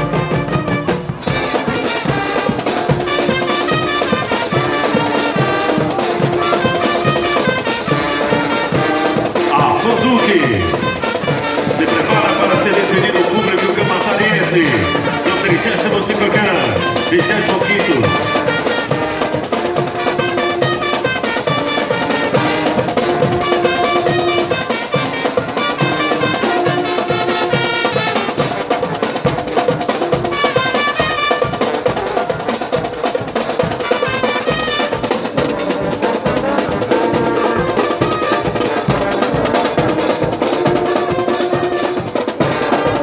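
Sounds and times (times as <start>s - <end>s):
brass section playing: 0.0s - 43.0s
snare and bass drums march beat: 0.0s - 43.0s.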